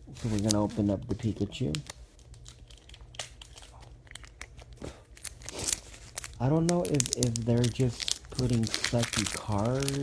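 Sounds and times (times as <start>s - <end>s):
foil wrapper tearing and crinkling: 1.6s - 10.0s.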